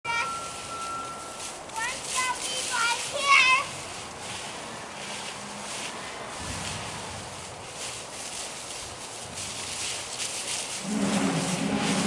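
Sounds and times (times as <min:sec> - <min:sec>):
children's voices calling: 0:00.0 - 0:05.2
toy rakes scraping dry leaves: 0:00.1 - 0:12.0.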